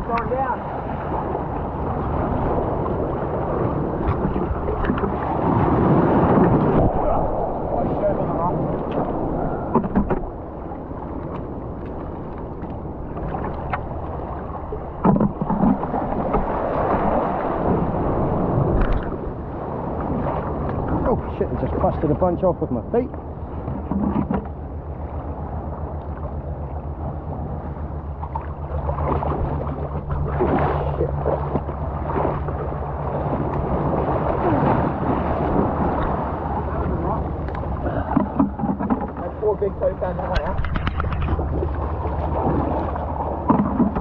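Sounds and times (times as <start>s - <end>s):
sea water sloshing around legs: 0.0s - 21.9s, 23.0s - 44.0s
wind on microphone: 0.0s - 44.0s.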